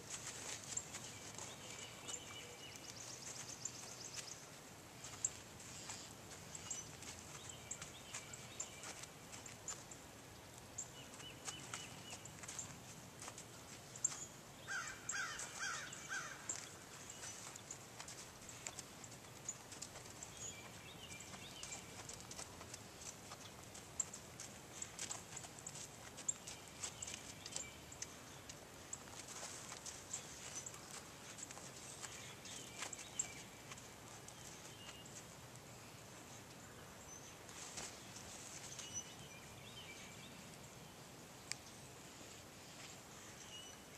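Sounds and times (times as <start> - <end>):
horse hooves on sand: 0.0 - 40.7
birds calling: 0.0 - 42.2.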